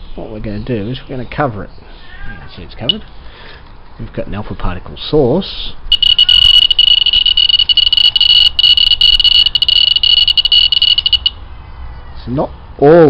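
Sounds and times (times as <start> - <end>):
detector rapid clicks: 5.9 - 11.3
detector high-pitched buzz: 5.9 - 11.4.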